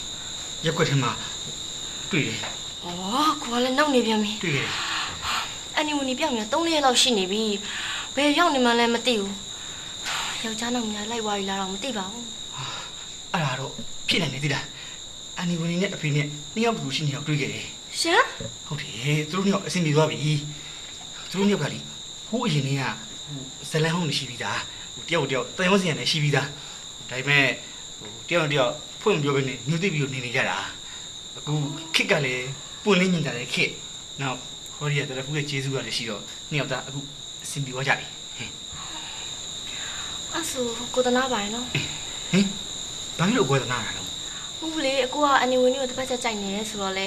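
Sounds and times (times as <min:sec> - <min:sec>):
crickets chirring: 0:00.0 - 0:47.0
man speaking: 0:02.1 - 0:02.5, 0:31.4 - 0:38.6, 0:43.2 - 0:44.1
man and woman talking: 0:02.1 - 0:14.8, 0:15.4 - 0:20.6, 0:21.2 - 0:30.8, 0:31.4 - 0:38.6, 0:43.2 - 0:45.2
high-pitched whine: 0:31.4 - 0:32.7.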